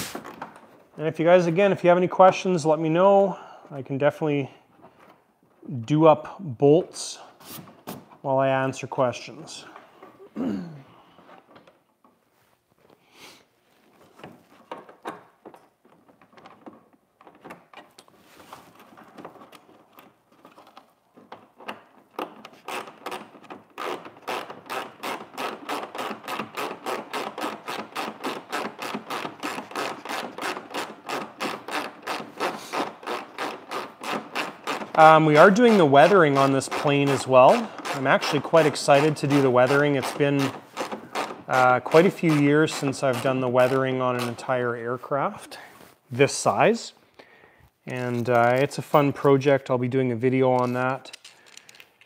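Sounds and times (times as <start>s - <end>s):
parts being handled: 11.0s - 26.9s, 50.4s - 52.0s.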